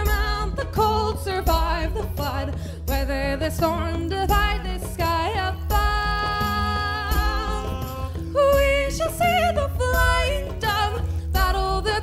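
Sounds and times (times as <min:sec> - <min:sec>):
instrumental backing with bass: 0:00.0 - 0:12.0
woman singing: 0:00.0 - 0:12.0.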